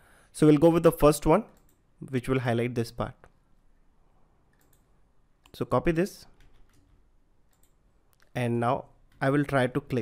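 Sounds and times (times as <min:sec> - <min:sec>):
faint mouse clicks: 0:04.5 - 0:05.6, 0:07.5 - 0:08.4.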